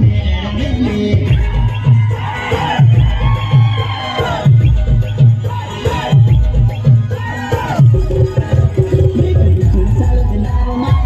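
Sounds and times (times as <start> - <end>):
crowd shouting and cheering: 0.0 - 11.0
music with heavy bass beat: 0.0 - 11.0.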